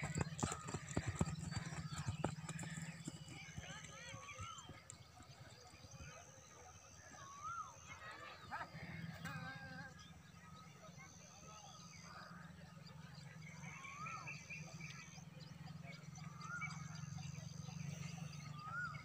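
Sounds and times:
horse hoofbeats on dirt: 0.0 - 6.5.

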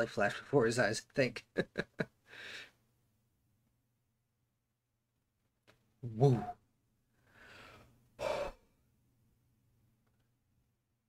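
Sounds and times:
man gasping: 2.3 - 2.8.

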